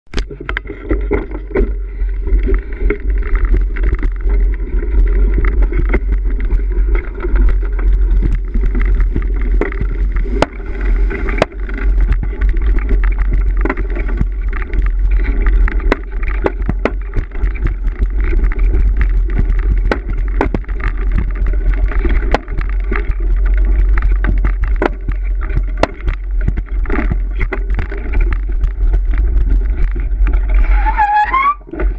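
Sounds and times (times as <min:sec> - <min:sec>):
bike rattling and clicking: 0:00.1 - 0:31.9
wind rumble on microphone: 0:00.1 - 0:31.9
sharp knocks: 0:24.2 - 0:27.2.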